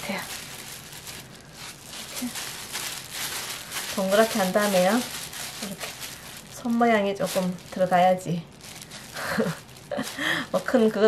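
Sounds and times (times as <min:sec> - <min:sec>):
plastic gloves and wrap crinkling: 0:00.0 - 0:11.0.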